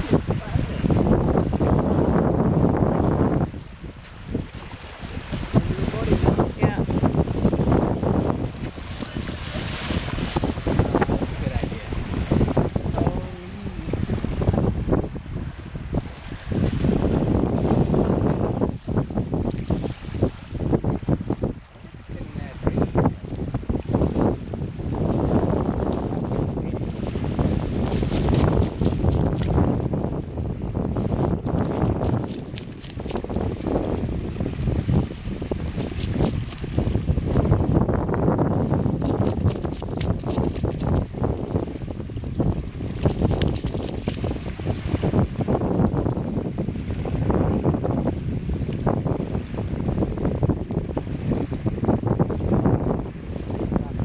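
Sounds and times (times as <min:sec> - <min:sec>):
small waves washing ashore: 0:00.0 - 0:54.0
wind buffeting microphone: 0:00.0 - 0:54.0.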